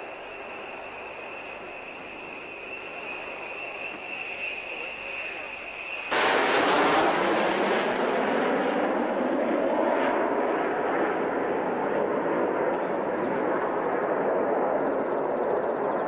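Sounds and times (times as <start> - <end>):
jet engine roar: 0.0 - 16.0.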